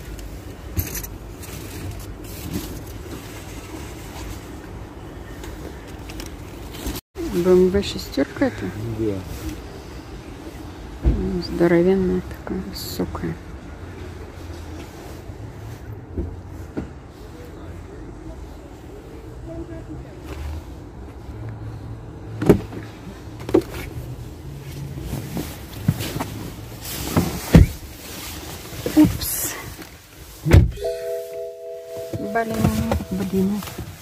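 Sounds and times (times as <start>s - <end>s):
outdoor car park hum: 0.0s - 34.0s
steady tone: 30.8s - 33.7s.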